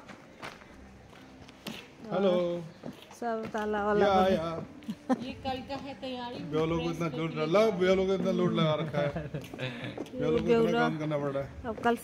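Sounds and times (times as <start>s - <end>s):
soft footsteps on pavement: 0.0s - 12.0s.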